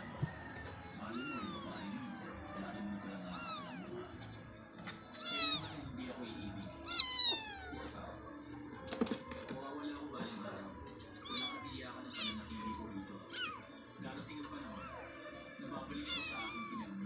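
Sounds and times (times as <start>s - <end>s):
kittens mewing: 0.0s - 6.0s, 6.7s - 8.1s, 11.1s - 13.8s, 14.6s - 17.0s.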